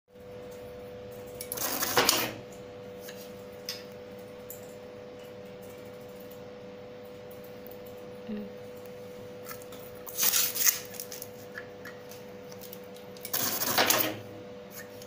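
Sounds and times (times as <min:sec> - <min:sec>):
steady hum: 0:00.1 - 0:15.0
tape-wrapping machine whirring: 0:09.5 - 0:11.5, 0:12.1 - 0:15.0.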